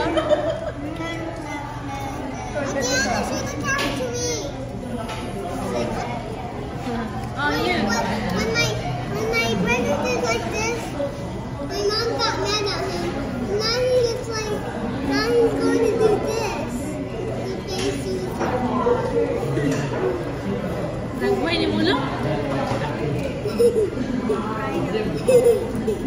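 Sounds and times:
children talking: 0.0 - 26.0.

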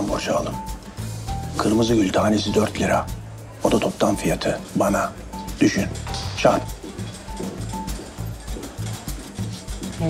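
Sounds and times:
music with low beat: 0.0 - 10.0.

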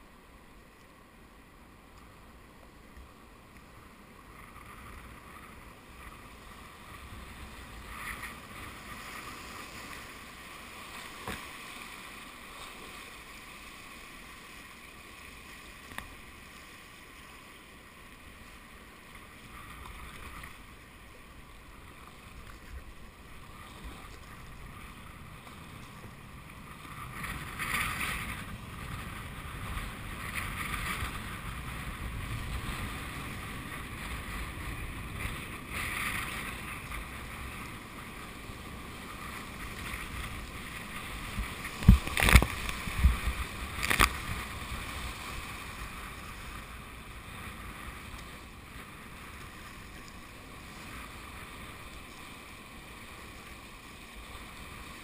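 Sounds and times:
kayak splashing through waves: 4.4 - 55.0.

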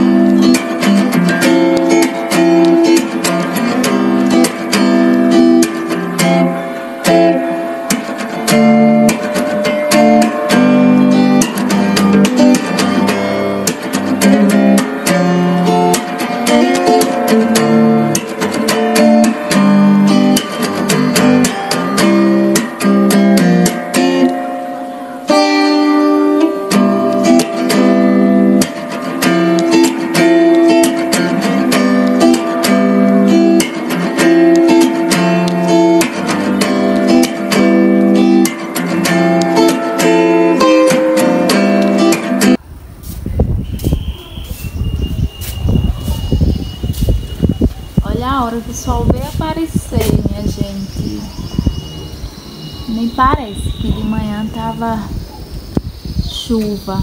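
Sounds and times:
acoustic guitar music: 0.0 - 57.0.

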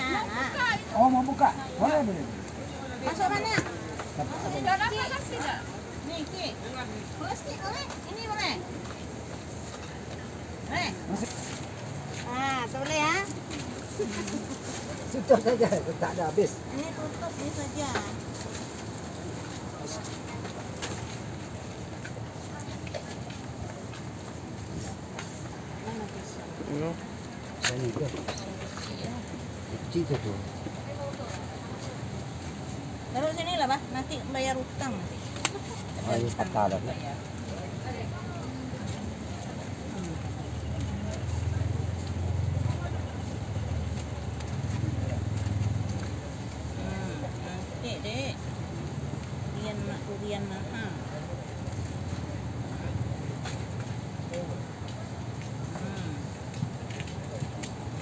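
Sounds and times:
outdoor background noise: 0.0 - 58.0
faint indistinct voices: 16.5 - 58.0.

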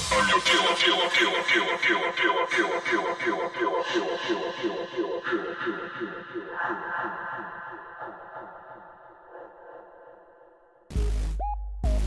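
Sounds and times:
electronic dance music: 0.0 - 2.0.

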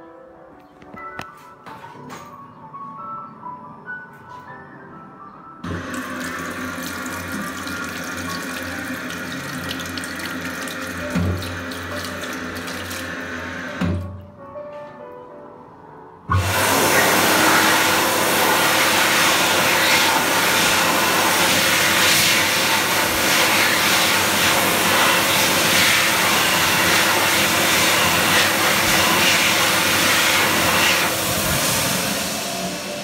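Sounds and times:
hand dryer blowing air: 5.7 - 14.0, 16.3 - 33.0.

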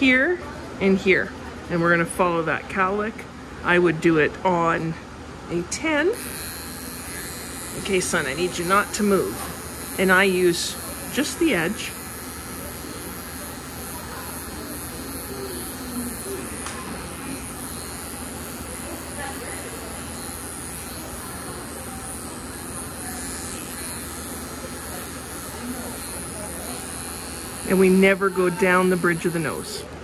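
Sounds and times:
electric clippers running: 6.0 - 30.0.

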